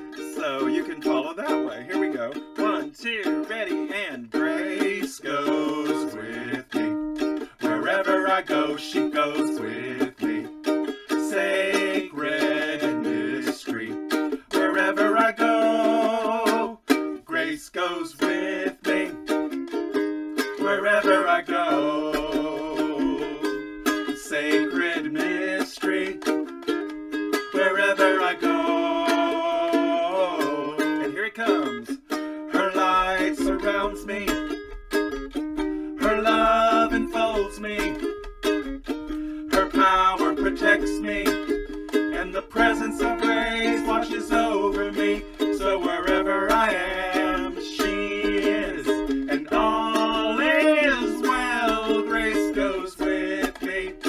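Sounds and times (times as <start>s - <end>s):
ukulele strumming chords: 0.0s - 54.0s
voices singing along: 0.3s - 7.0s, 7.6s - 10.5s, 11.2s - 19.2s, 20.6s - 26.3s, 27.5s - 34.4s, 36.0s - 38.1s, 39.5s - 54.0s.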